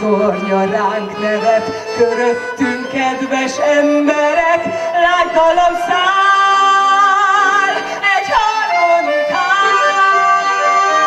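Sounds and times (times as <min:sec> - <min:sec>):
accordion: 0:00.0 - 0:11.0
woman singing into microphone: 0:00.0 - 0:11.0.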